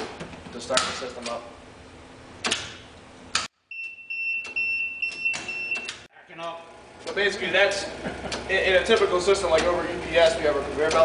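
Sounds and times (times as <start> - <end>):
alarm buzzer steady high tone: 3.7 - 6.1.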